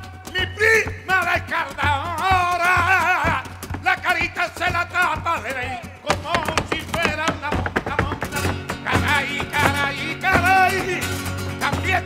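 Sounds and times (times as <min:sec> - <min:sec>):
dancer's heel footwork: 0:00.0 - 0:12.0
man singing: 0:00.0 - 0:12.0
spanish guitar playing: 0:06.2 - 0:12.0.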